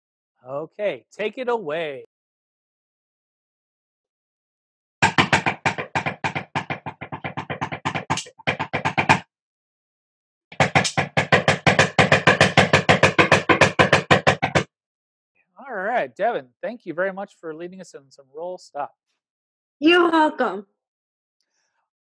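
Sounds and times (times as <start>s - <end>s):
fast drum rolls: 10.6s - 14.6s.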